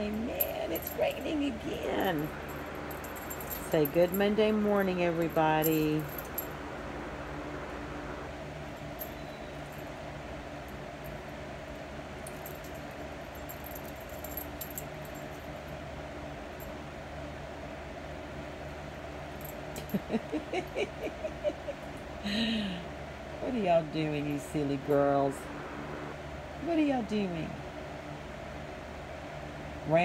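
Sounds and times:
dog collar tags jingling: 0:00.0 - 0:06.5, 0:08.8 - 0:10.0, 0:12.2 - 0:15.7, 0:19.3 - 0:21.2
low steady hum: 0:00.0 - 0:30.0.

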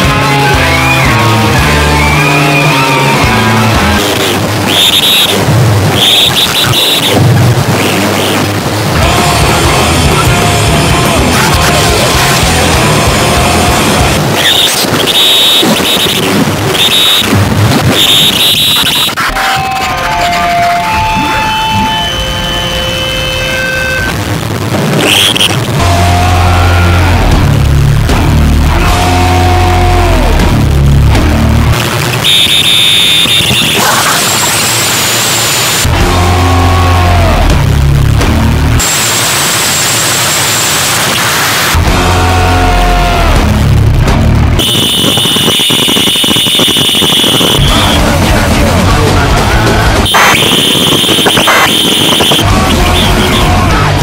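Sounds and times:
harsh distorted noise music: 0:00.0 - 0:54.0
rough steady rumble: 0:03.1 - 0:23.4, 0:24.1 - 0:54.0
held whistling tones: 0:04.7 - 0:07.2, 0:14.4 - 0:17.3, 0:17.9 - 0:19.2, 0:20.4 - 0:24.1, 0:32.2 - 0:33.8
high piercing screech: 0:04.7 - 0:07.2, 0:14.4 - 0:17.3, 0:17.9 - 0:24.1, 0:32.2 - 0:35.9, 0:44.6 - 0:48.0, 0:50.0 - 0:53.8
steady high tone: 0:17.9 - 0:24.2.

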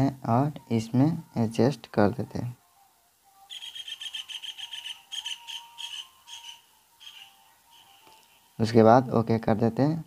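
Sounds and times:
small bird chirping: 0:03.5 - 0:08.6.

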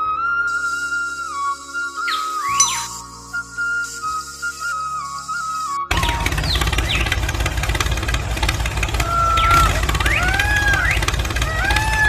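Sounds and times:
birds chirping: 0:01.2 - 0:05.2, 0:05.9 - 0:12.0
tractor engine chugging: 0:05.9 - 0:12.0.

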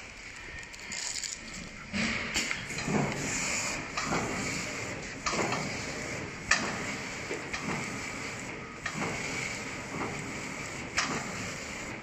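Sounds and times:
packing machine hum and hiss: 0:00.0 - 0:12.0
machine clack: 0:01.9 - 0:12.0.

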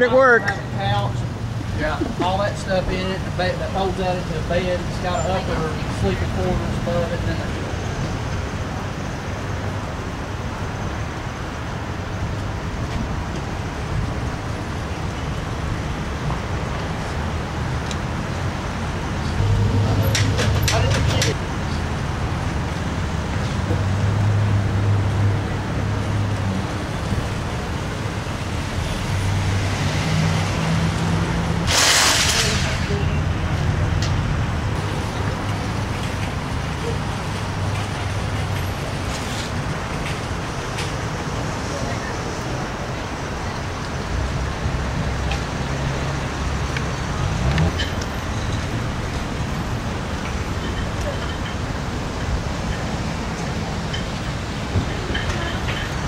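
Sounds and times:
short hiss: 0:31.7 - 0:33.0.

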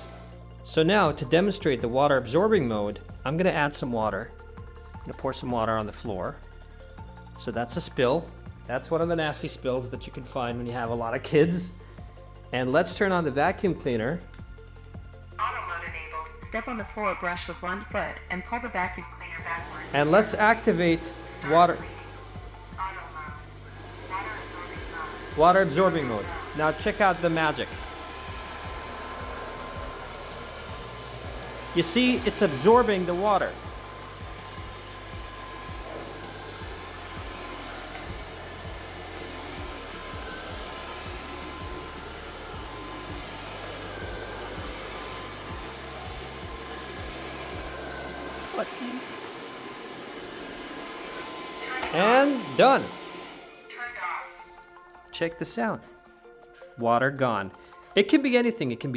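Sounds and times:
vacuum cleaner humming: 0:00.0 - 0:00.4, 0:19.4 - 0:54.7.

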